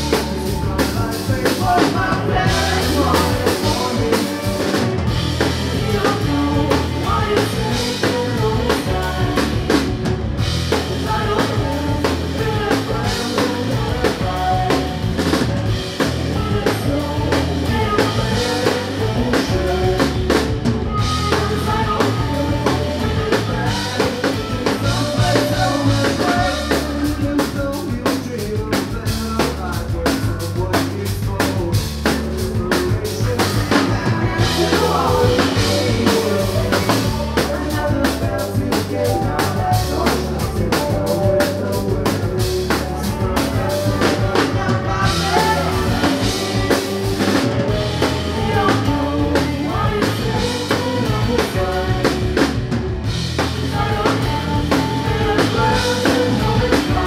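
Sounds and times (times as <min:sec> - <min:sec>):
drum kit: 0:00.0 - 0:57.0
rock band playing live: 0:00.0 - 0:57.0.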